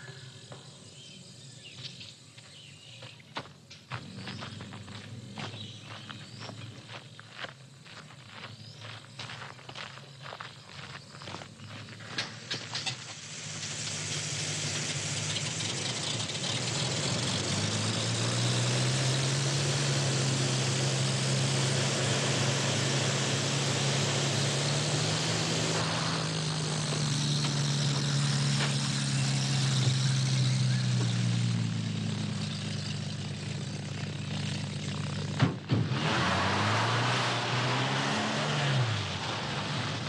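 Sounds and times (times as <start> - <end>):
engine droning: 0.0 - 40.0
broad hiss: 12.3 - 15.5.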